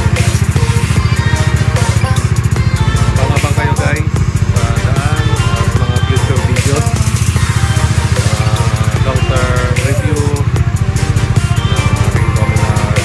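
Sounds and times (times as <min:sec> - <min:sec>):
motorcycle engine idling: 0:00.0 - 0:13.0
music with sung melody: 0:00.0 - 0:13.0.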